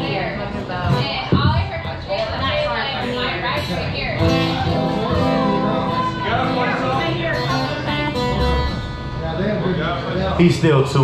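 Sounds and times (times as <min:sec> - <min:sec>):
acoustic guitar being tuned: 0:00.0 - 0:11.0.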